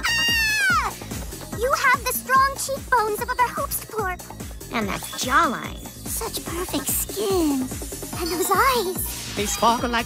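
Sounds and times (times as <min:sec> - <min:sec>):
cartoon high-pitched screaming cry: 0:00.0 - 0:01.0
background music with steady beat: 0:00.0 - 0:10.0.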